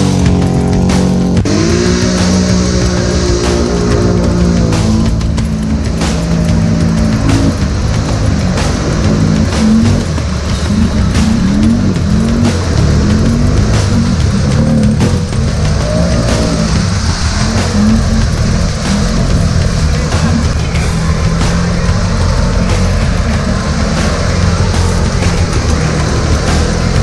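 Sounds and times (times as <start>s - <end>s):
atv engine revving: 0.0s - 27.0s
background music: 0.0s - 27.0s.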